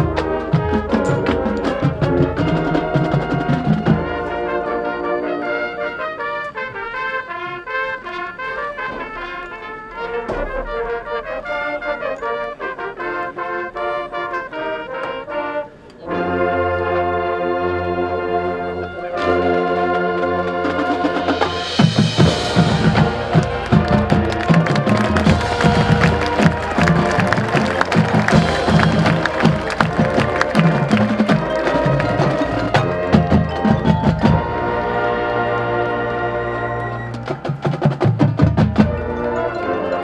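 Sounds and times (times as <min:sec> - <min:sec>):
marching band brass: 0:00.0 - 0:40.0
cymbal crash and drums: 0:10.3 - 0:11.9, 0:21.2 - 0:23.7.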